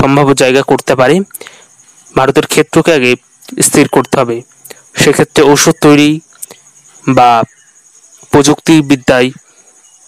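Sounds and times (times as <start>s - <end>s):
person speaking: 0.0s - 7.5s, 8.2s - 9.4s
high-pitched pulsing chirr: 0.0s - 10.0s.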